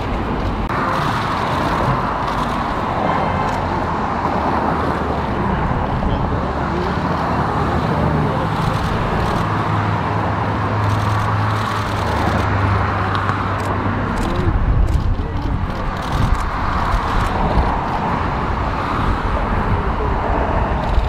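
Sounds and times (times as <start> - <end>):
road traffic noise: 0.0 - 21.0.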